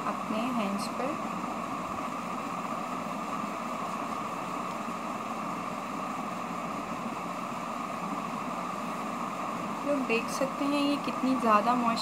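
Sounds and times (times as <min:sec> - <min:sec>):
steady hum and hiss: 0:00.0 - 0:12.0.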